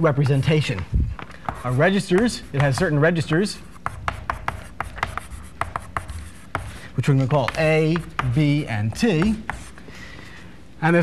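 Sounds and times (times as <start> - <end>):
chalk scratching: 0.0 - 9.8
chalk tapping on blackboard: 0.1 - 9.8.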